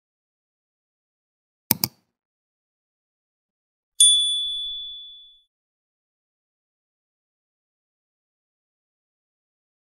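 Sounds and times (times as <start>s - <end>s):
high-pitched bell ding: 4.0s - 5.5s.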